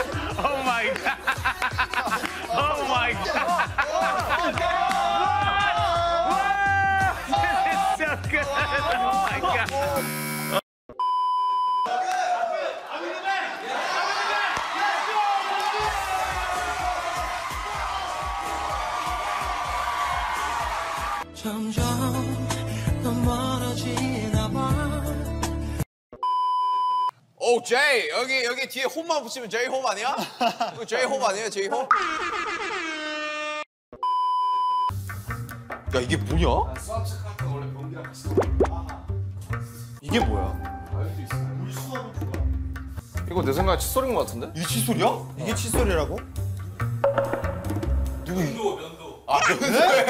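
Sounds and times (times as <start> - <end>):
game-show buzzer: 9.9 - 10.6
electronic beep: 10.0 - 11.8, 34.0 - 34.9.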